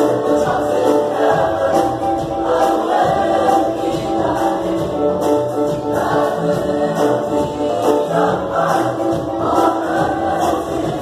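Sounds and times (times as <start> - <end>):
choir of young men singing: 0.0 - 11.0.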